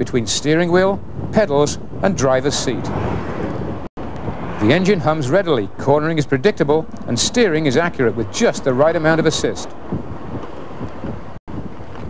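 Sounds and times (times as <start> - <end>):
road noise: 0.0 - 12.0
wind rushing over microphone: 0.0 - 12.0.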